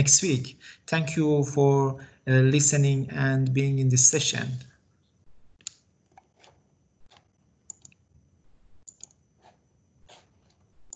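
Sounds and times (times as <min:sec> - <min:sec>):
faint high whine: 0:00.0 - 0:10.9
computer mouse or key clicks: 0:07.1 - 0:08.0, 0:08.8 - 0:09.2.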